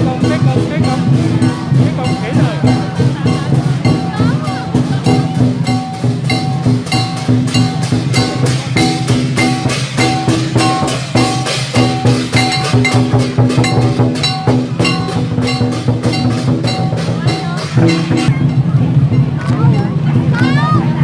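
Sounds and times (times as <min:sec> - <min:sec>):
hand cymbals clashing: 0:00.0 - 0:20.9
barrel drum pounding: 0:00.0 - 0:21.0
gong strokes: 0:00.1 - 0:19.3.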